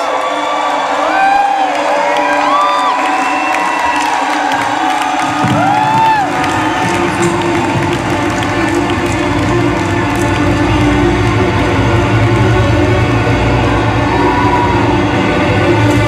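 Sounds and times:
faint crowd cheering: 0:00.0 - 0:16.0
deep bass drone: 0:05.3 - 0:16.0
sustained synthesizer tones: 0:05.4 - 0:16.0.

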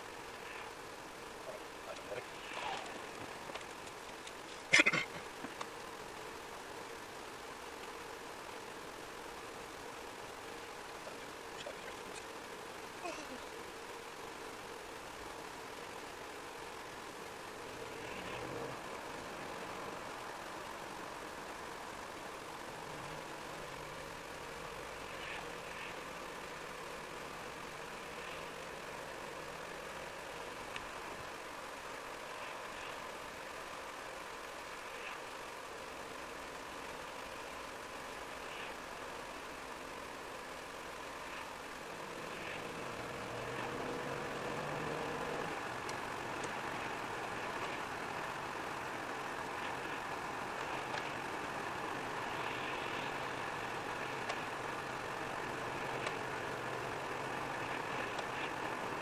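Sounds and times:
car engine: 0:00.0 - 0:59.0.

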